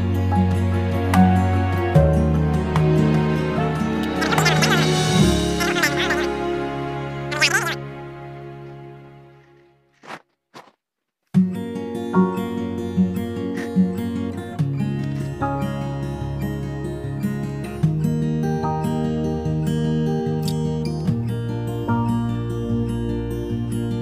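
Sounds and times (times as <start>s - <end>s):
plucked guitar-like music: 0.0s - 9.6s, 11.4s - 24.0s.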